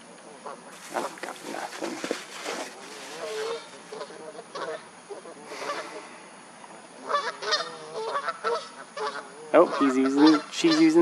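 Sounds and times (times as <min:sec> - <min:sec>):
waterfowl calling: 0:00.4 - 0:06.1, 0:07.0 - 0:11.0.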